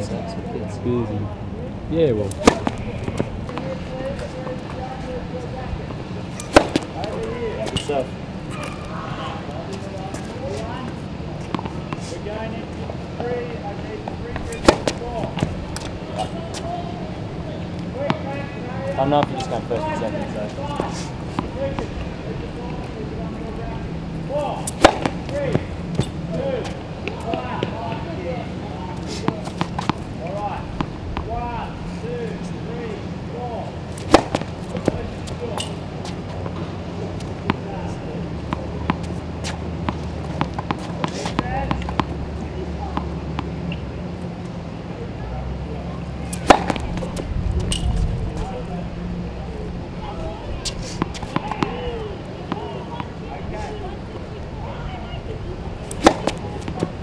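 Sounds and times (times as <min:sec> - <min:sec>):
ball bouncing on hard court: 0:02.3 - 0:03.7, 0:06.4 - 0:07.8, 0:14.4 - 0:15.9, 0:24.7 - 0:26.1, 0:34.0 - 0:35.0, 0:46.3 - 0:47.2, 0:55.9 - 0:56.9
tennis racket hitting ball: 0:02.3 - 0:03.8, 0:06.3 - 0:07.9, 0:14.0 - 0:16.6, 0:24.3 - 0:27.7, 0:29.1 - 0:31.3, 0:33.9 - 0:35.8, 0:46.3 - 0:47.9, 0:50.6 - 0:51.9, 0:55.8 - 0:57.0.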